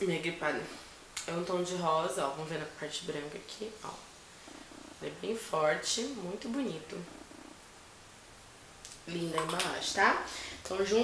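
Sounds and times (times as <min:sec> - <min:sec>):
faint low background noise: 0:00.0 - 0:11.0.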